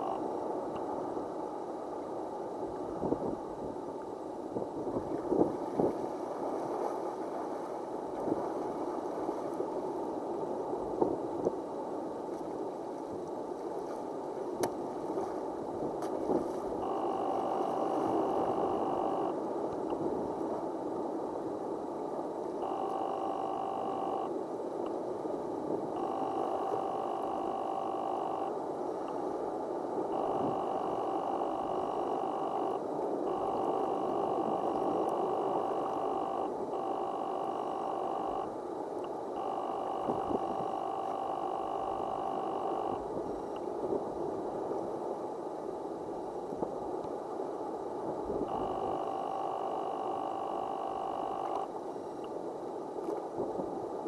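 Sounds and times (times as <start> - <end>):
steady multi-pitch tone: 0.0 - 0.4, 16.8 - 19.9, 22.6 - 24.4, 25.9 - 29.3, 29.9 - 43.7, 48.4 - 52.2.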